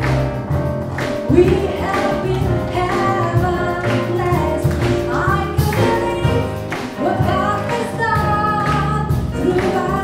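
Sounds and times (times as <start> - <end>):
jazz combo playing: 0.0 - 10.0
woman singing: 1.3 - 10.0.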